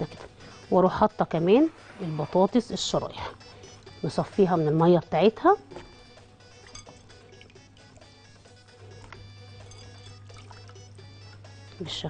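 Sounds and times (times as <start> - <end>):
low steady hum: 0.0 - 12.0
soft background music: 0.0 - 12.0
water dripping and trickling: 6.5 - 8.4, 9.0 - 10.9.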